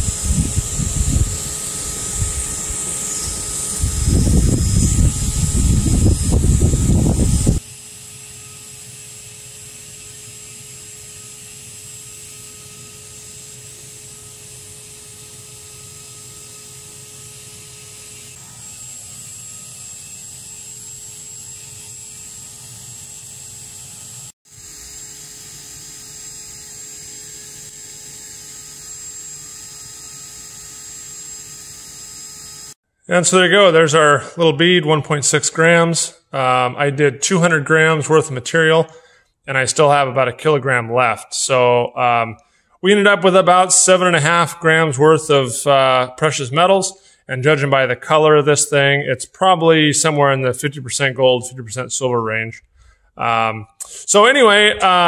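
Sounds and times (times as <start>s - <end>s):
low rumbling: 0.0s - 7.6s
cooling fan whine and hum: 0.0s - 38.9s.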